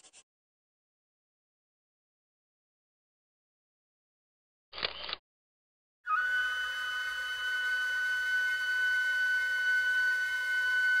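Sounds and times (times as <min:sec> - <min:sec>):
steam whistle blowing: 0:06.1 - 0:11.0.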